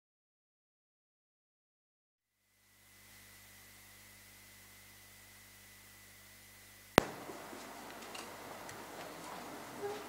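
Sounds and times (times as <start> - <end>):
sharp click: 7.0 - 7.3.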